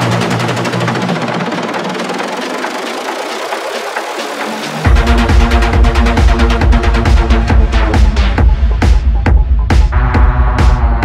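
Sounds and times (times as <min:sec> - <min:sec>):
buzzing synth loop: 0:00.0 - 0:11.0
filtered kick and bassline: 0:00.0 - 0:11.0
rapid hi-hats: 0:00.0 - 0:11.0.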